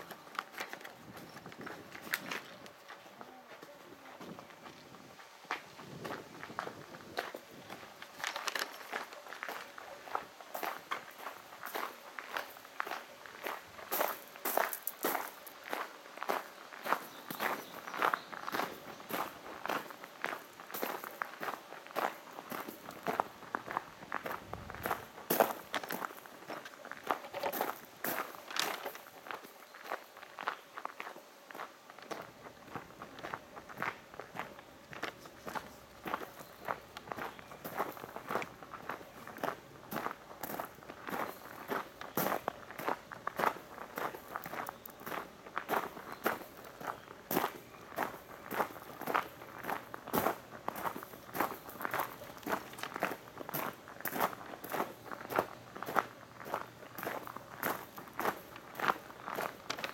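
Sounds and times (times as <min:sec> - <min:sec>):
footsteps crunching on gravel: 0:00.0 - 0:59.9.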